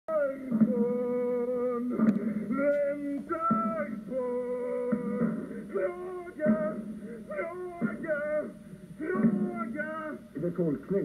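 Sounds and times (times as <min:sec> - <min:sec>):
person humming: 0:00.1 - 0:08.4.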